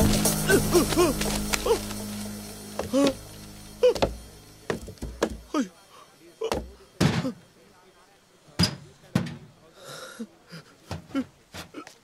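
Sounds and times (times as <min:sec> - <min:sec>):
man panting and grunting: 0:00.4 - 0:01.9.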